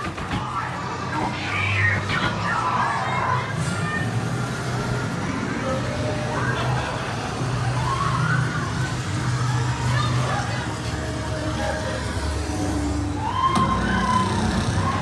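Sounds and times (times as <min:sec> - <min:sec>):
wailing tones: 0:00.4 - 0:15.0.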